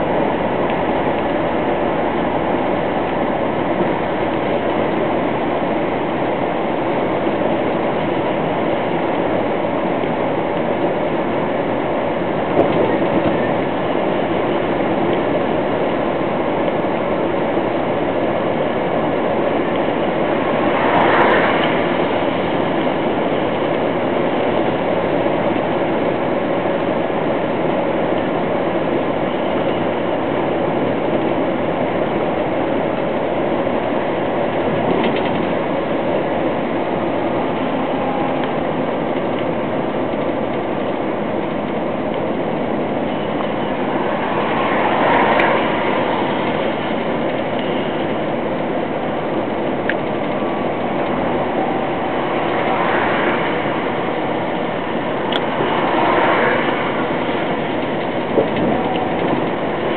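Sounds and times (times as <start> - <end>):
truck engine running: 0.0 - 59.9.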